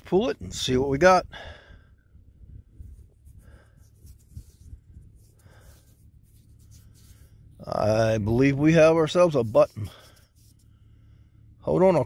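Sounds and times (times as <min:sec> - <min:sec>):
soil scratching and rustling: 0:02.8 - 0:10.8.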